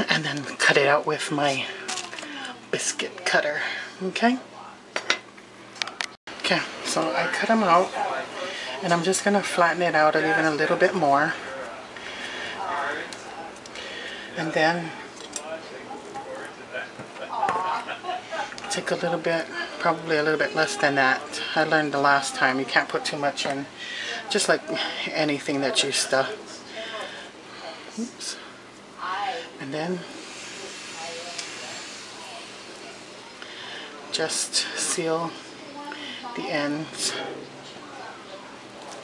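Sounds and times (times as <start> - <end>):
faint voices: 0.0 - 4.9, 5.7 - 39.0
steady background hiss: 22.7 - 39.0.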